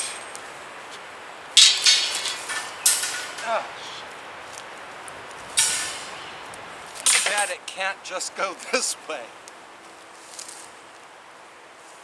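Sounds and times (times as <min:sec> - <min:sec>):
wire panel metallic rattle: 0:01.6 - 0:03.6, 0:05.6 - 0:06.2, 0:07.0 - 0:07.5.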